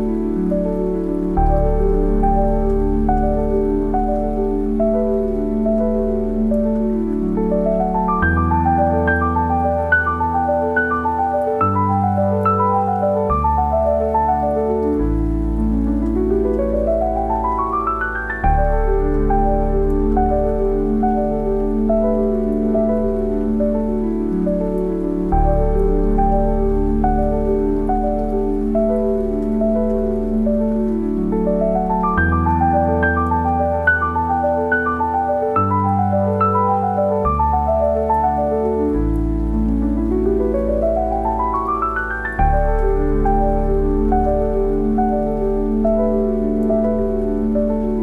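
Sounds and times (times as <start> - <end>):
gentle solo piano: 0.0 - 48.0
steady rain: 0.0 - 48.0.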